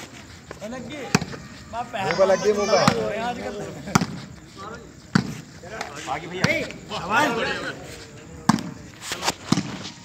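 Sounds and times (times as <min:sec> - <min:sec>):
players shouting: 0:00.9 - 0:04.0, 0:05.9 - 0:08.7
volleyball slaps: 0:08.4 - 0:09.9.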